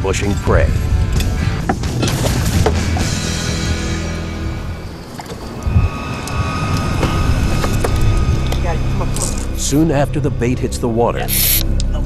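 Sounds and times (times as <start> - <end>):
boat motor rumbling: 2.5 - 12.0.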